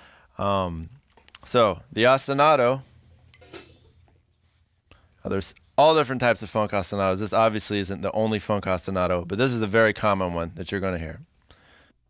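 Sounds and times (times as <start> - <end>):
drumsticks rustling: 2.3 - 4.6.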